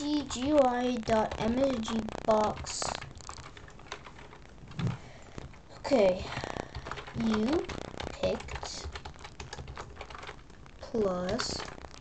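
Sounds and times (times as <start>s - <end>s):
keyboard typing clicks: 0.1s - 12.0s.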